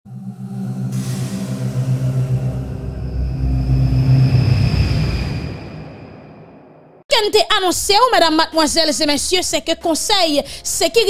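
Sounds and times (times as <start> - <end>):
deep low rumble: 0.1 - 7.0
held chord music sting: 0.1 - 7.0
whoosh: 0.1 - 7.0.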